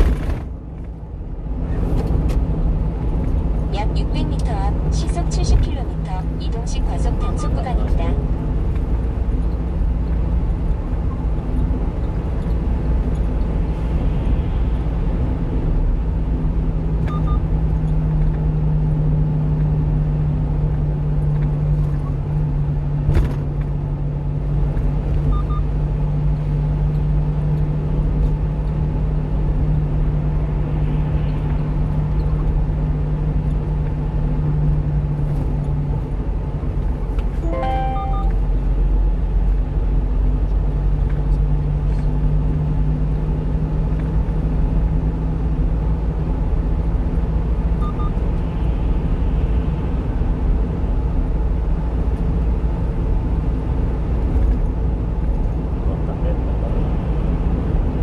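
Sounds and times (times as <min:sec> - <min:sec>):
low hum: 0:00.0 - 0:39.2
truck engine and road drone: 0:00.0 - 0:58.0
electronic beeps: 0:37.4 - 0:38.5.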